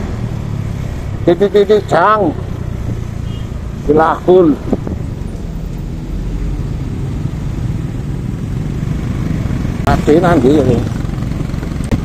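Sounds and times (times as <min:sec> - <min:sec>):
motorcycle engine running: 0:06.6 - 0:12.0.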